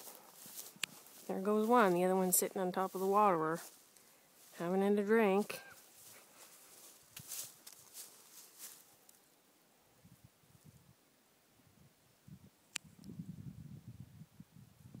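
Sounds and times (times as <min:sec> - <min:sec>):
soft rustles: 0:00.0 - 0:04.7, 0:05.4 - 0:09.3.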